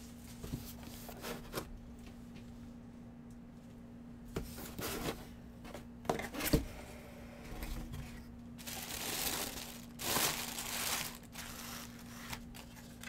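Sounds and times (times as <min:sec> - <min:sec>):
tissue paper rustling: 0:08.6 - 0:13.0.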